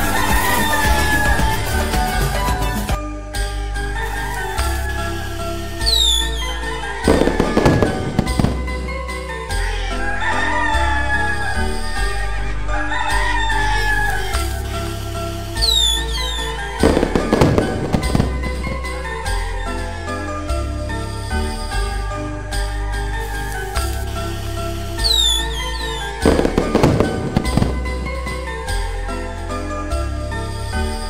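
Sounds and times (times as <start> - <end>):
rooster crowing: 0.0 - 2.0, 4.0 - 8.6, 9.7 - 14.7, 15.6 - 19.8, 25.0 - 28.6
background music with steady beat: 0.0 - 31.0
firework whistle: 4.1 - 8.6, 13.6 - 18.9, 23.2 - 28.4
firework crackling bangs: 5.8 - 6.4, 7.1 - 9.0, 14.4 - 18.9, 25.0 - 28.6.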